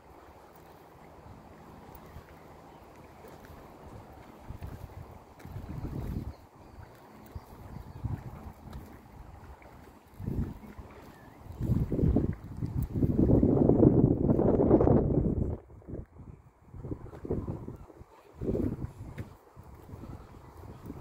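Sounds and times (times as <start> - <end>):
wind buffeting microphone: 0.0 - 21.0.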